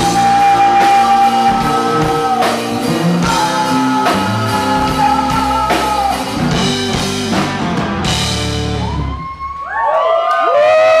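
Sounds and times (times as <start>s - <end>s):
bending guitar pitches: 0.0s - 9.4s
live rock band playing: 0.0s - 9.7s.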